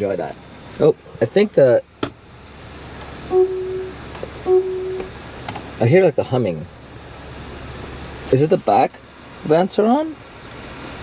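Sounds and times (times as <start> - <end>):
seat fans humming: 0.0 - 11.0
electronic beeps: 3.3 - 5.1.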